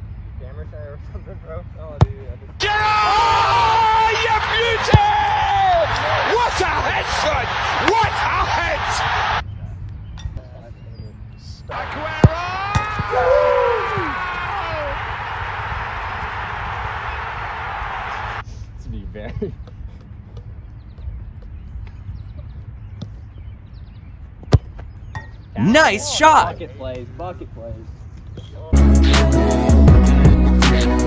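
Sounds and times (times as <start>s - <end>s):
voices shouting and cheering: 2.6s - 9.4s, 11.7s - 18.4s, 25.6s - 26.7s
football kicked hard: 12.1s - 13.2s.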